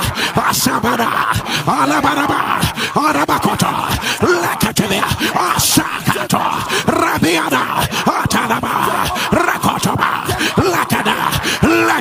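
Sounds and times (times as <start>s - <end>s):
man praying aloud in tongues: 0.0s - 12.0s.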